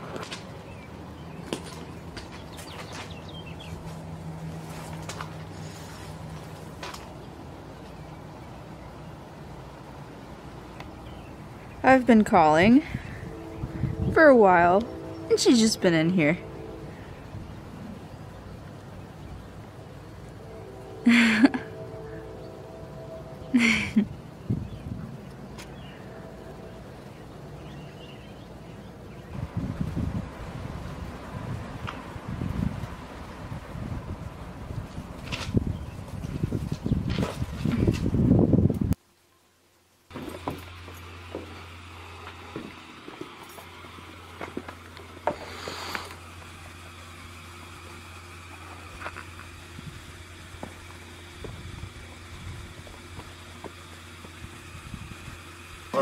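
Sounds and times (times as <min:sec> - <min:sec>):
low engine hum: 0:00.0 - 0:39.0, 0:40.0 - 0:56.0
faint outdoor background: 0:00.0 - 0:56.0
wind buffeting microphone: 0:12.4 - 0:18.6, 0:24.1 - 0:25.5, 0:29.2 - 0:39.0.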